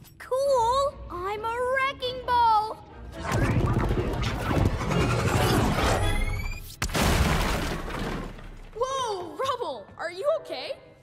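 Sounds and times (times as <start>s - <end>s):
fireball blast crashing and shattering: 6.8s - 8.8s.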